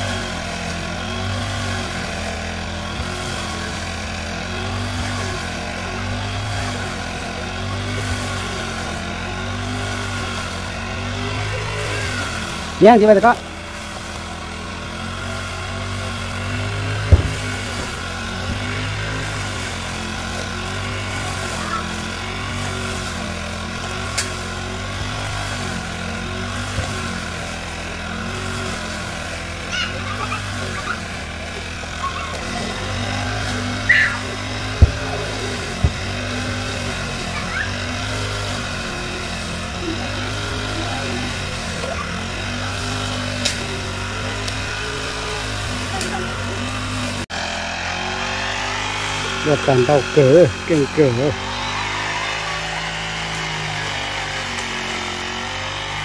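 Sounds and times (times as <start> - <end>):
brush cutter engine running: 0.0 - 56.0.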